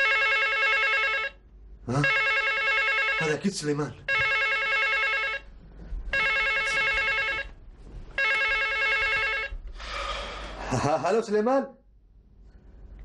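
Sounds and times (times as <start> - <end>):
telephone ringing: 0.0 - 5.5, 6.1 - 9.6.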